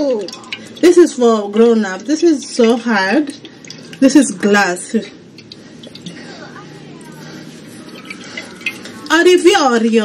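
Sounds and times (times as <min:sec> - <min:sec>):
oil glugging from bottle: 0:00.2 - 0:06.6, 0:07.2 - 0:09.2.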